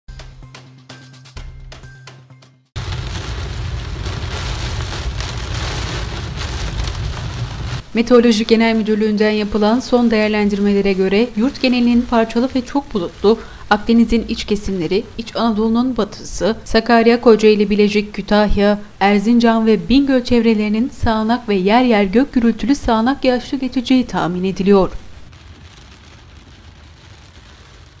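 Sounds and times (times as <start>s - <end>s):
heavy rain on car roof: 2.8s - 15.3s, 23.9s - 28.0s.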